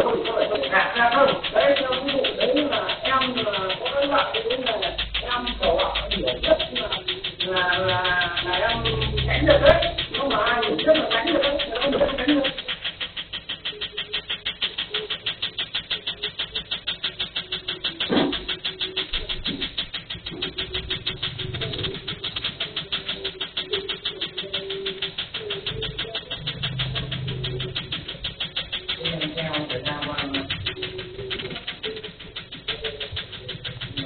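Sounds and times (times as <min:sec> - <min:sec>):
laser pulses snapping: 0:00.0 - 0:34.0.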